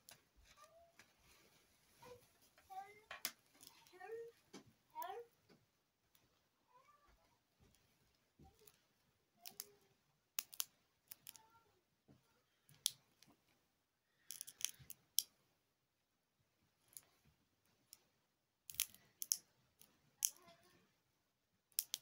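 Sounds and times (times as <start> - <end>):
sharp clicks and snaps: 9.4 - 9.8, 10.4 - 11.5, 12.7 - 13.3, 14.2 - 15.4, 18.7 - 20.5, 21.7 - 22.0.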